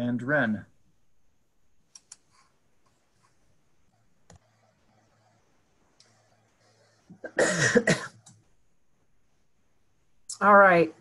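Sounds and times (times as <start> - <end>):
person coughing: 7.1 - 8.2.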